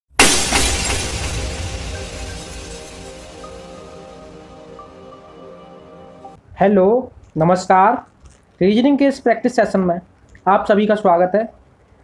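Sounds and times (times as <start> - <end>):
glass shattering: 0.1 - 4.4.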